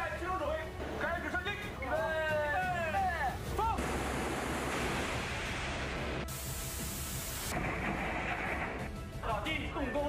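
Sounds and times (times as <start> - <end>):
harsh bright hiss: 3.8 - 7.6.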